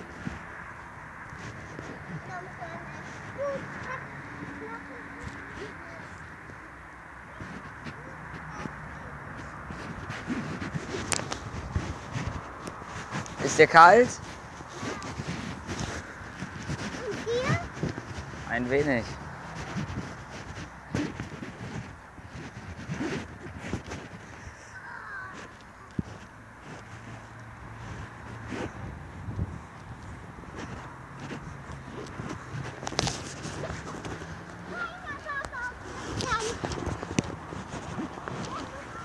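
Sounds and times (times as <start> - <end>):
footsteps on sandy path with twigs: 0.0 - 39.0.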